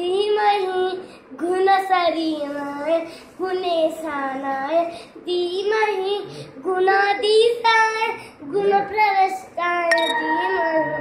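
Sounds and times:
boy singing a devotional chant: 0.0s - 10.9s.

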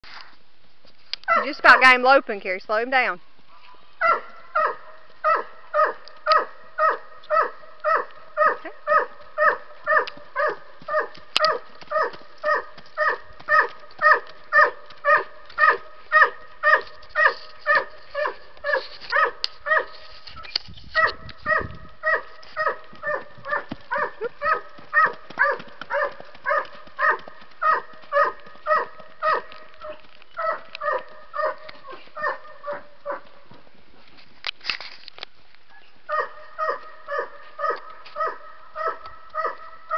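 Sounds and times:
dog barking: 1.3s - 1.9s, 3.5s - 20.0s, 21.0s - 33.4s, 36.1s - 39.9s.

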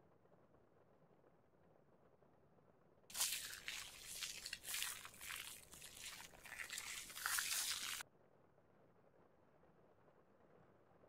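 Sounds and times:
razor scraping through beard: 3.1s - 8.0s.

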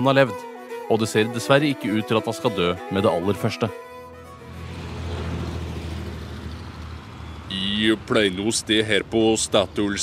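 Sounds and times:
vehicle engine humming: 0.4s - 9.1s
traffic background noise: 2.8s - 10.0s.

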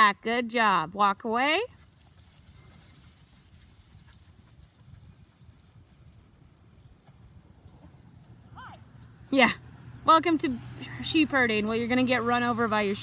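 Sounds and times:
low steady rumble: 0.0s - 13.0s
sheep hooves trotting on sand: 1.6s - 9.2s.

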